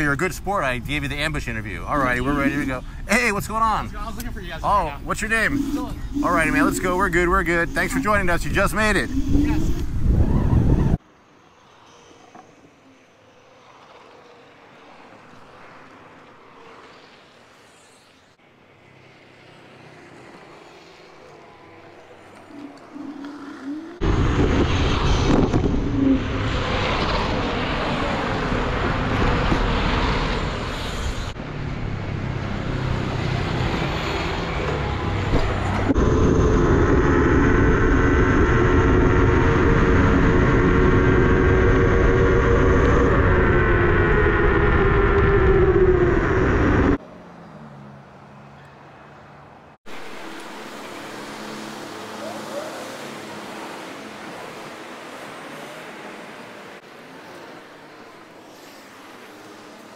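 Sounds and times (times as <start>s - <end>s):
faint street ambience: 0.0s - 36.5s, 45.2s - 59.9s
mechanical whine: 0.0s - 47.0s, 49.9s - 59.9s
road noise: 0.0s - 59.9s
wind noise on microphone: 5.8s - 11.0s.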